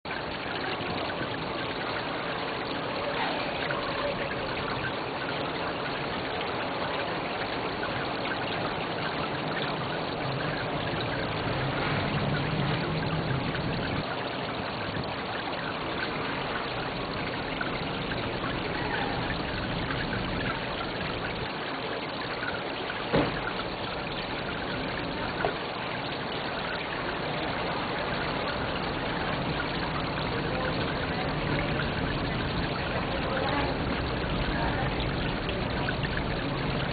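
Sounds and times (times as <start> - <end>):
fountain water splashing: 0.1 - 36.9.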